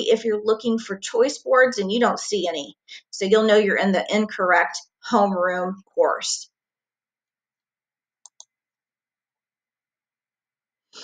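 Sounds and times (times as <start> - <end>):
computer mouse clicks: 8.2 - 8.6.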